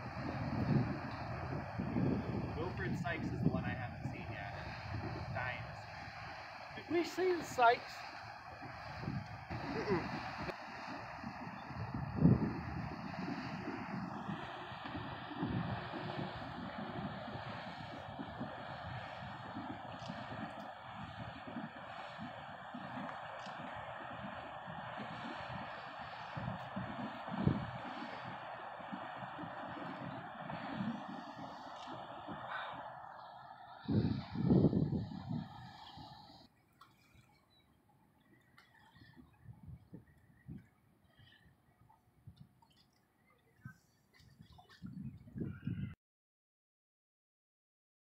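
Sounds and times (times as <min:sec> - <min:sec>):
wind buffeting microphone: 0:00.0 - 0:36.5, 0:38.8 - 0:40.8, 0:43.6 - 0:46.0.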